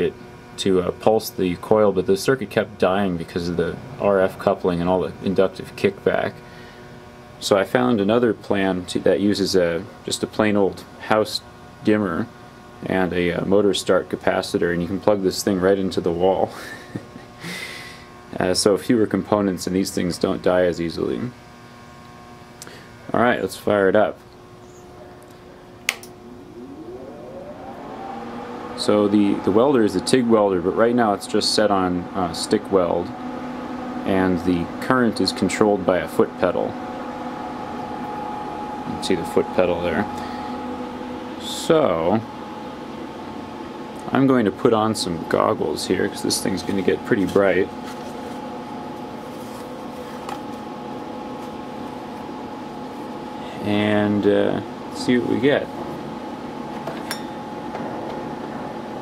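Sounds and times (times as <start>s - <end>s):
cooling fan whine rising: 0.0s - 59.0s.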